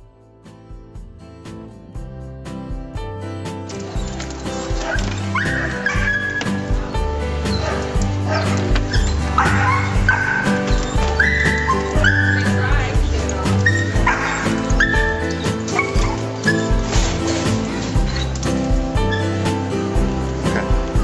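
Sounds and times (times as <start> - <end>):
background music with beat: 0.0 - 21.0
dog barking and whining: 3.9 - 6.7, 7.4 - 17.4.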